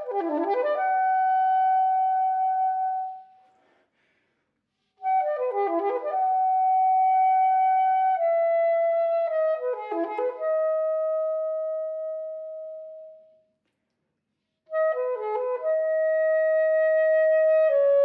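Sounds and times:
soprano saxophone playing: 0.0 - 3.2.

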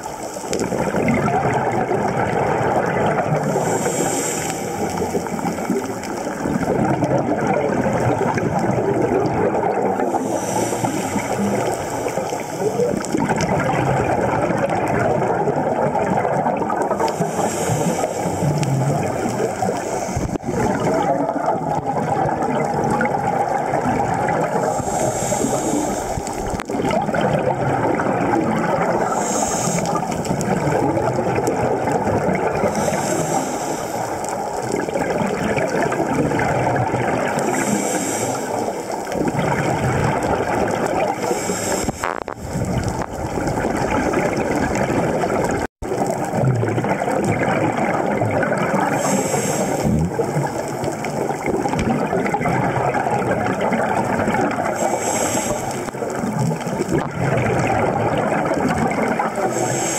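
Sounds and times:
bubbles gurgling underwater: 0.0 - 59.9
regulator breathing hiss: 3.5 - 6.2, 10.1 - 12.8, 17.0 - 18.7, 19.5 - 20.5, 24.6 - 26.6, 29.0 - 30.2, 32.7 - 34.4, 37.4 - 39.1, 41.2 - 42.5, 48.9 - 49.9, 54.8 - 56.0, 59.5 - 59.9.

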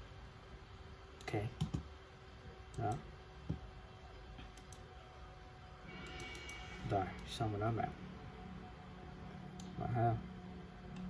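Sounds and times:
computer mouse clicks: 4.4 - 4.8, 6.0 - 6.6.

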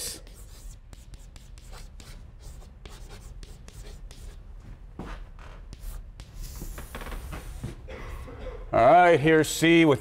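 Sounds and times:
chalk scratching on blackboard: 0.0 - 4.4, 5.7 - 7.6.

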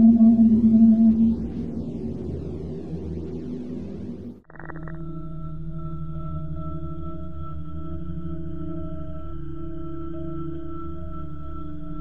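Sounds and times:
faint higher tone: 0.0 - 2.2
low whale-like hum: 0.0 - 12.0.

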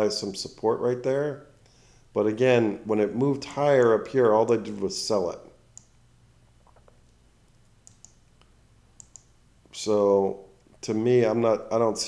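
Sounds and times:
computer mouse clicks: 6.6 - 9.3.

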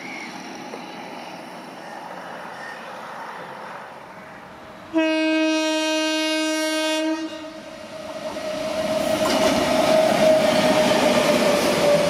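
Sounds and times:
faint train running noise: 0.0 - 5.0, 7.5 - 12.0
locomotive air horn blast: 4.9 - 7.7.

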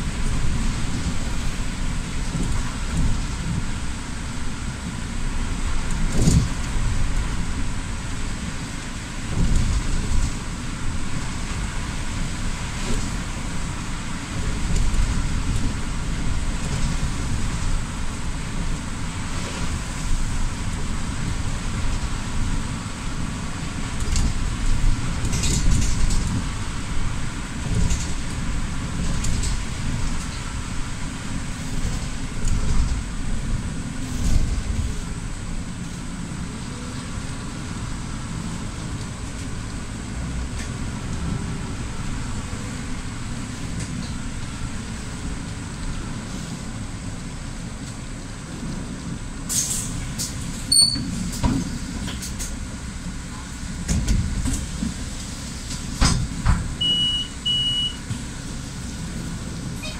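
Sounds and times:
bus engine rumble: 0.0 - 59.9
rain and road spray hiss: 0.0 - 59.9.

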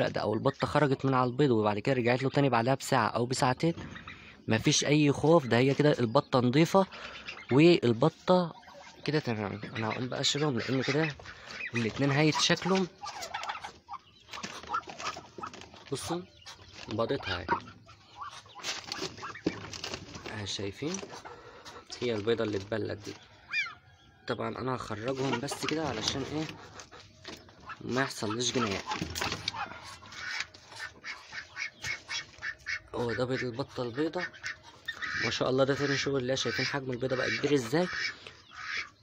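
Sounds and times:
duck soft calls: 8.5 - 15.5, 25.0 - 39.0.

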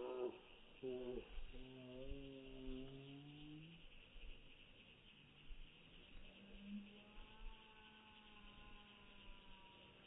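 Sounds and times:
faint hum of thin tones: 0.0 - 10.0.

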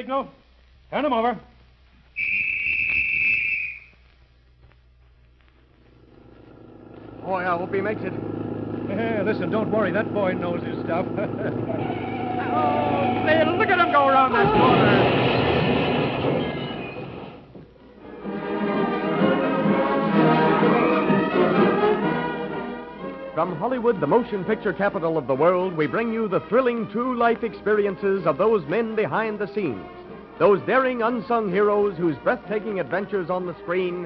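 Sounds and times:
long whistle blast: 2.2 - 4.0, 11.7 - 14.4
tyres screeching: 11.5 - 17.5.

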